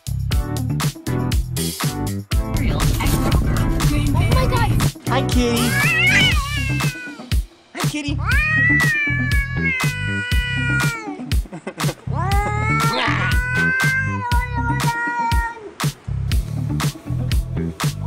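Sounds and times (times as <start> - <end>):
background music with beat: 0.0 - 15.0, 15.7 - 18.0
cat meowing: 5.6 - 7.3, 8.2 - 11.2, 12.1 - 15.8.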